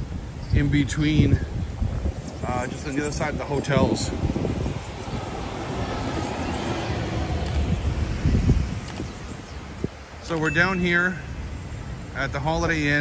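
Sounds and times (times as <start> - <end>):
wind buffeting microphone: 0.0 - 13.0
bus driving past: 2.6 - 9.8.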